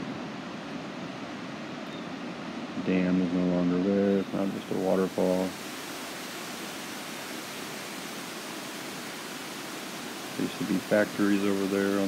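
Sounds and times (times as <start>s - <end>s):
water rushing over a dam: 0.0s - 12.0s.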